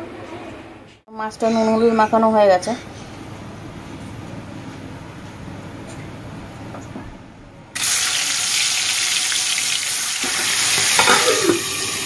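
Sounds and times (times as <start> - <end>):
fish sizzling in hot oil: 7.8 - 12.0.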